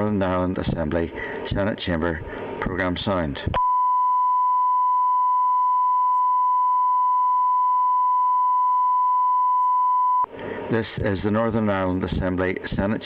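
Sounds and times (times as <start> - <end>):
steady high-pitched test tone: 3.6 - 10.3.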